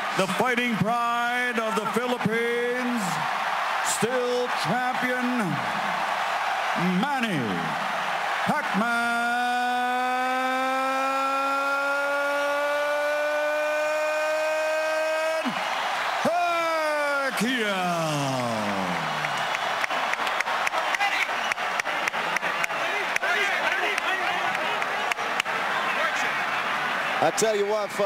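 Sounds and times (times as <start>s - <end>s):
crowd cheering and applauding: 0.0s - 28.0s
announcer's drawn-out shout: 8.5s - 15.6s, 16.2s - 19.3s.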